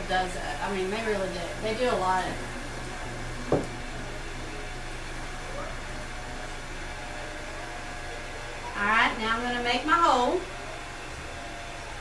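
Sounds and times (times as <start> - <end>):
potter's wheel humming: 0.0 - 12.0
brief knock: 3.5 - 3.8.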